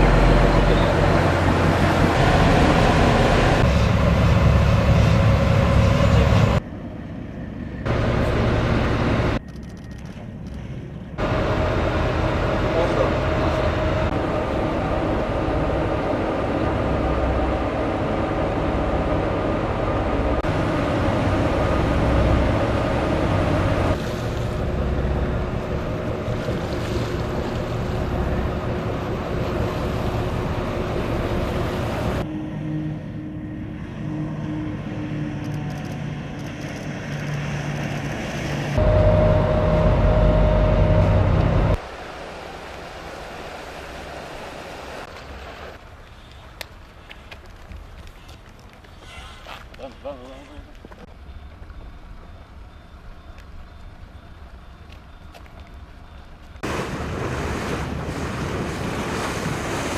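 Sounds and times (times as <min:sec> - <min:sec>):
boat engines running at speed: 0:00.0 - 0:06.6, 0:07.9 - 0:09.5, 0:11.2 - 0:32.3, 0:32.9 - 0:45.8, 0:51.8 - 0:59.9
water noise: 0:00.0 - 0:06.6, 0:11.1 - 0:32.4, 0:33.0 - 0:48.9, 0:51.8 - 0:59.9.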